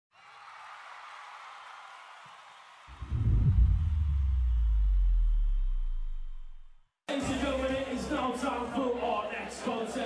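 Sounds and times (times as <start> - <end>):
deep bass boom: 2.9 - 6.8.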